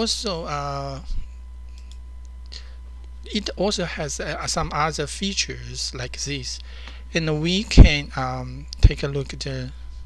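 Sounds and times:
low electrical hum: 0:00.0 - 0:10.0
computer mouse clicks: 0:01.7 - 0:02.4.

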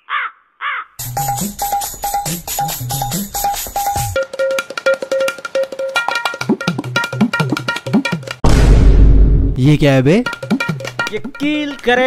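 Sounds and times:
crow cawing: 0:00.0 - 0:01.0
percussive music with quick beat: 0:01.0 - 0:08.4, 0:10.1 - 0:12.0.

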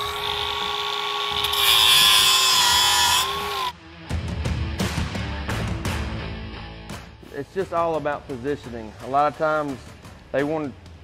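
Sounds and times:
angle grinder whining: 0:00.0 - 0:03.8
grinder grinding steel: 0:00.0 - 0:03.8.

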